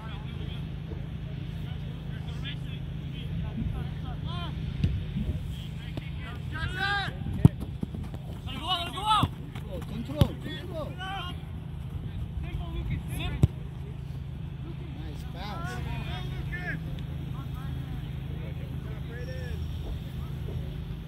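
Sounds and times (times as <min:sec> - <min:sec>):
steady low rumble: 0:00.0 - 0:21.0
players shouting: 0:05.8 - 0:19.6
soccer ball kicked: 0:07.2 - 0:11.0, 0:13.2 - 0:13.8.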